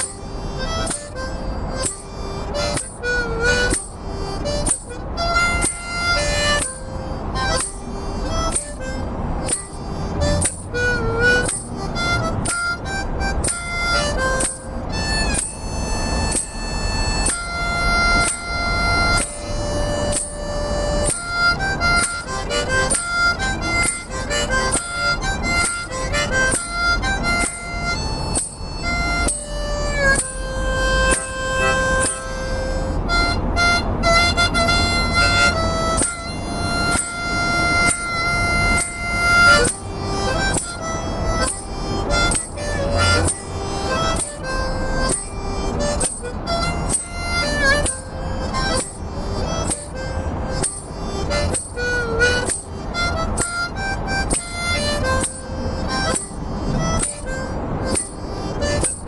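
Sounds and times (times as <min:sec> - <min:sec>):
harmonica melody: 0:00.0 - 0:59.0.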